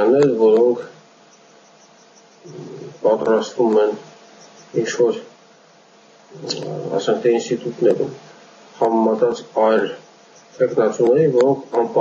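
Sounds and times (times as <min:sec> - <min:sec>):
man speaking over video call: 0:00.0 - 0:00.9, 0:03.0 - 0:04.0, 0:04.8 - 0:05.3, 0:06.5 - 0:08.2, 0:08.8 - 0:10.0, 0:10.6 - 0:12.0.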